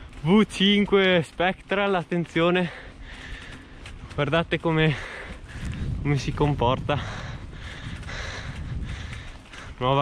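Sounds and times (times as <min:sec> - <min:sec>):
low wind rumble on microphone: 0:02.8 - 0:10.0.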